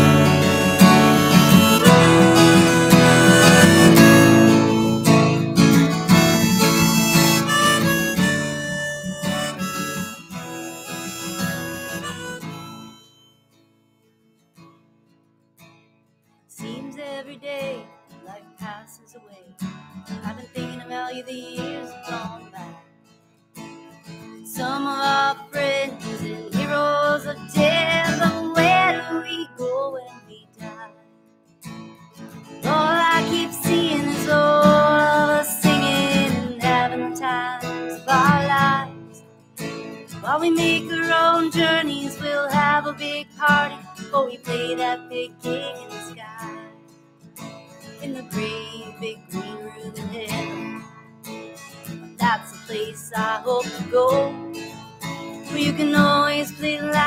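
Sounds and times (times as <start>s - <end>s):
harmonica: 0.0s - 13.4s, 25.0s - 29.5s, 32.6s - 46.7s
acoustic guitar strumming: 0.0s - 57.0s.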